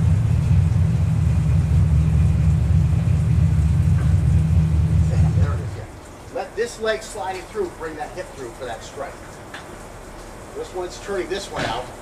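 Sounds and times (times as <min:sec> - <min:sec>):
loud low rumble: 0:00.0 - 0:06.0.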